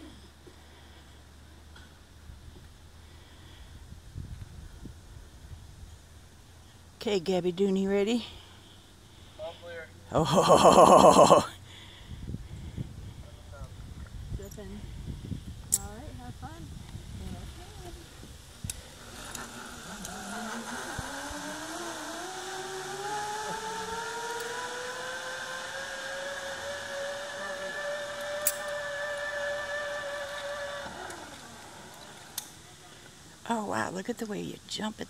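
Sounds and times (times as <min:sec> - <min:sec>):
zipline pulleys whining on cable: 0:10.2 - 0:11.6, 0:17.1 - 0:33.4.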